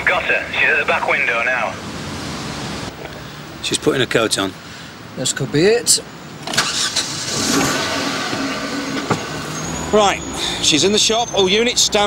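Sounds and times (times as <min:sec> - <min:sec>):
vehicle noise: 0:00.0 - 0:12.0.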